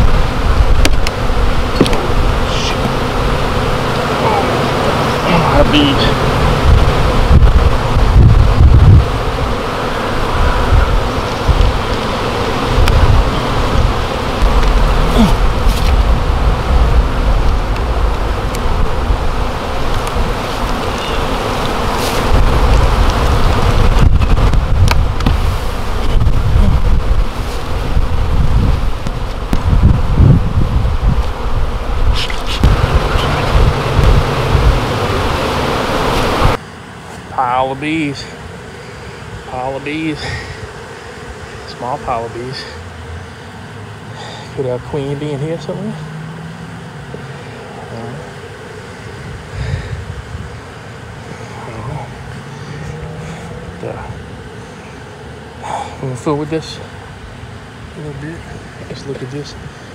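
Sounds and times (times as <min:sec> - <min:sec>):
bees buzzing loudly: 0:00.0 - 0:59.9.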